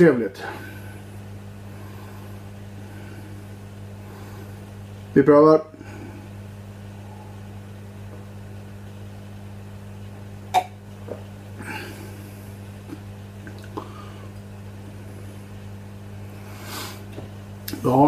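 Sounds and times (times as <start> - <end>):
low hum: 0.0 - 18.0
breathy exhale: 1.7 - 4.7, 11.6 - 12.6, 16.4 - 17.1
man's mouth and throat sounds: 12.9 - 13.9.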